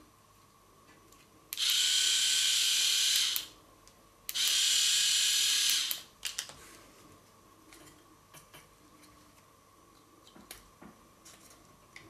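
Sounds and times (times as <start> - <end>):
electric shaver motor whirring: 1.6 - 3.5, 4.3 - 6.1.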